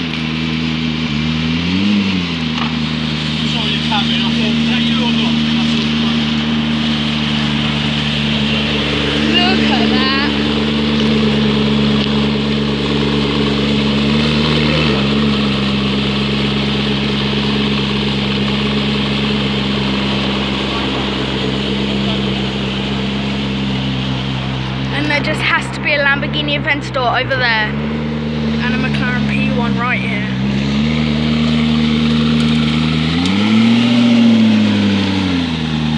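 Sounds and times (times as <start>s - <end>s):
car engine idling: 0.0s - 35.9s.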